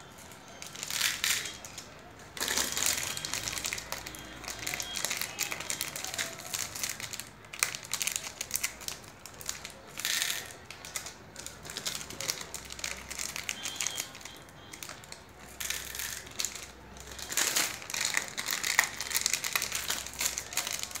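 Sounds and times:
plastic wrappers crinkling: 0.1s - 21.0s.

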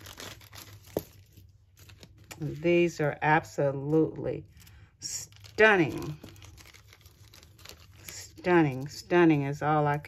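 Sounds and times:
plastic packaging crinkling: 0.0s - 3.0s, 4.4s - 9.1s.

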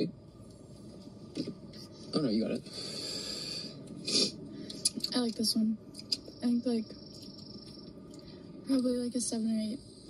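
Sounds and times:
vaping breath hiss: 2.7s - 4.4s.

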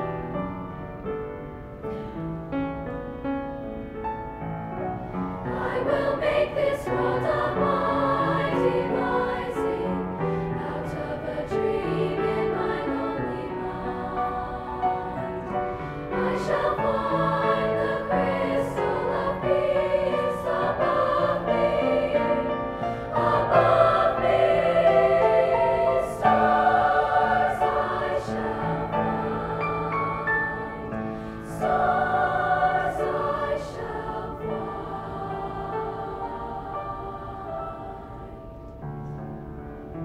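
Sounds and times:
piano accompaniment: 0.0s - 40.0s
girls' choir singing: 5.4s - 38.7s.

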